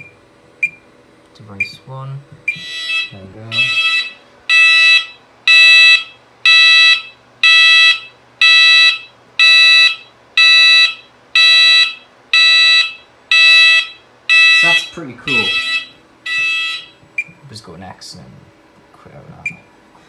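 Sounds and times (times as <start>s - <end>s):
pulsed fire alarm tone: 2.5s - 17.0s.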